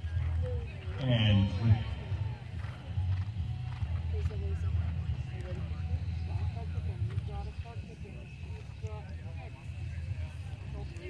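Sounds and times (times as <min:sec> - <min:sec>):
distant voices talking: 0:00.0 - 0:11.0.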